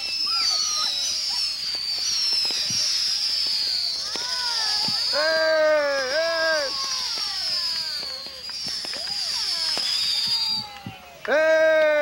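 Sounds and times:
fireworks popping: 0:00.0 - 0:12.0
fireworks whistling downward: 0:00.0 - 0:12.0.

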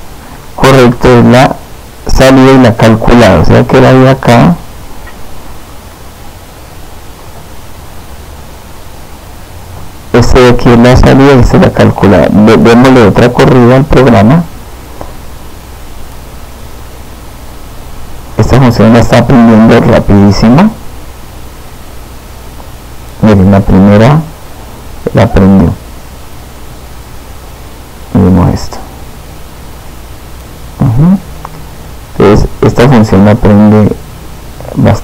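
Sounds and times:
faint low hum: 0:00.0 - 0:35.0
microphone hiss: 0:00.0 - 0:35.0
man saying uh-huh: 0:30.8 - 0:31.2.

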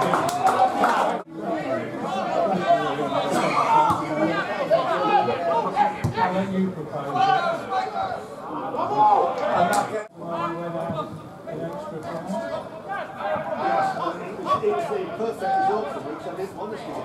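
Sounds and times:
crowd talking and calling out: 0:00.0 - 0:17.0.

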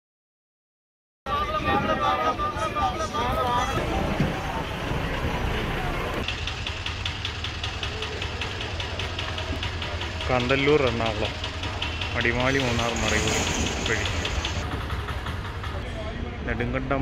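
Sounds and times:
people's voices: 0:01.3 - 0:17.0
bus engines idling: 0:02.0 - 0:17.0
engine clattering: 0:03.8 - 0:17.0.

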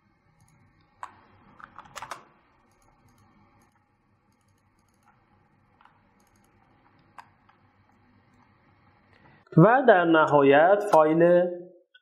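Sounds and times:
mouse and keyboard clicks: 0:00.4 - 0:05.2, 0:05.8 - 0:07.6.

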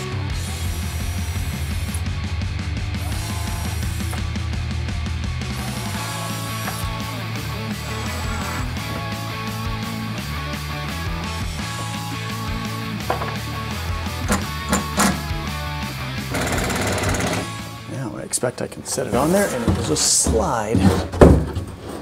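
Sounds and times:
background rock music: 0:00.0 - 0:18.6
impact driver rattling: 0:14.2 - 0:15.4, 0:16.3 - 0:17.6.

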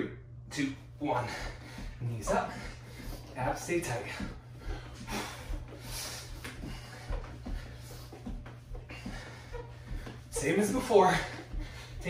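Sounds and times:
man breathing hard: 0:01.1 - 0:03.4, 0:04.0 - 0:10.3, 0:10.9 - 0:12.0
feet patting on mat: 0:01.2 - 0:12.0.

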